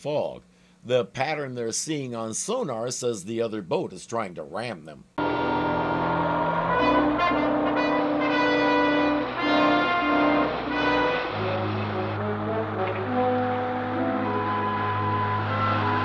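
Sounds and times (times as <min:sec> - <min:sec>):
low sustained note: 0:05.2 - 0:16.0
orchestral music led by brass: 0:05.2 - 0:16.0.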